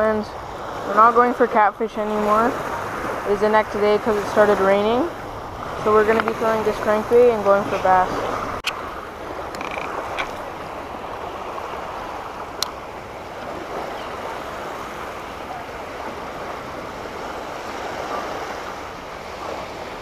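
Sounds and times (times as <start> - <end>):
small waves washing on shore: 0.0 - 20.0
wind on microphone: 0.0 - 20.0.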